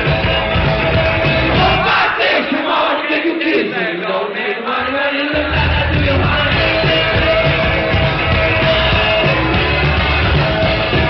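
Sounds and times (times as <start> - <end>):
live rock band playing: 0.0 - 2.1, 5.3 - 11.0
crowd chanting: 1.4 - 7.6.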